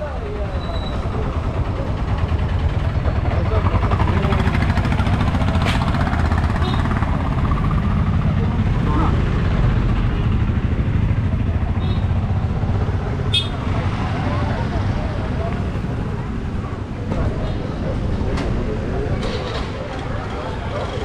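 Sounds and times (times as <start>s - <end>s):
scooter engines rumbling: 0.0s - 21.0s.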